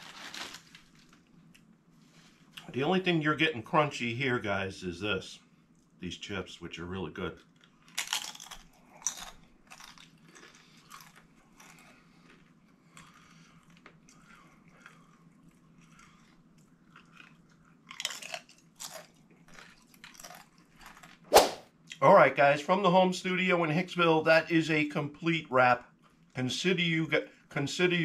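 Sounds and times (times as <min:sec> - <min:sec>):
tortilla chips crunching: 0:00.0 - 0:01.7, 0:07.4 - 0:21.3.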